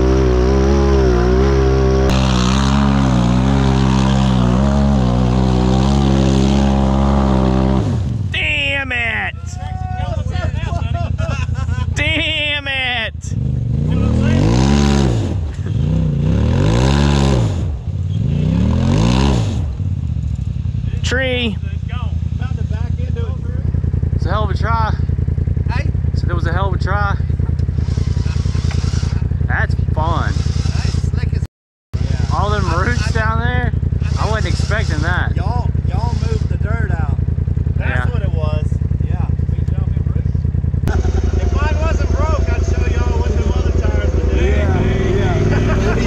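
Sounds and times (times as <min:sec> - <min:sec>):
buggy engine revving: 0:00.0 - 0:46.0.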